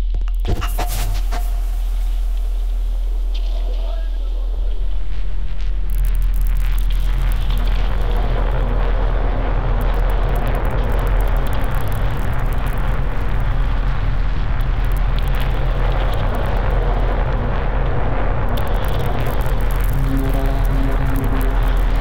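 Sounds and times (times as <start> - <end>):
constant low hum: 0.0 - 22.0
electronic drone: 0.0 - 22.0.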